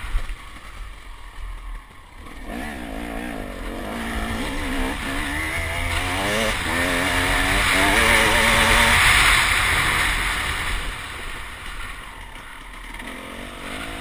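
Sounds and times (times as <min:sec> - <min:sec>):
motorcycle engine accelerating: 0:00.0 - 0:14.0.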